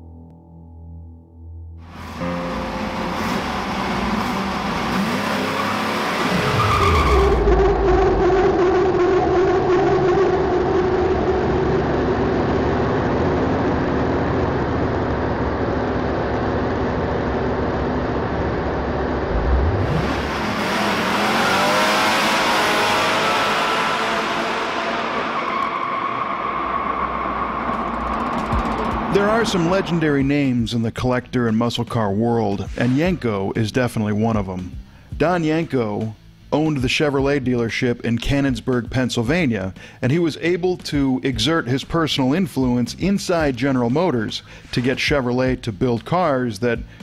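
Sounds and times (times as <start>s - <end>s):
car engine revving hard: 1.9s - 14.2s, 18.0s - 30.2s
tyres spinning and squealing: 3.4s - 11.6s, 19.7s - 30.3s.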